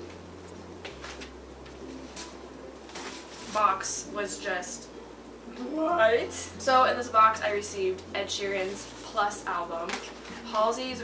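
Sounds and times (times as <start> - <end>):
record sleeves rustling: 0.0 - 4.1, 8.4 - 10.9
steady low hum: 0.0 - 11.0.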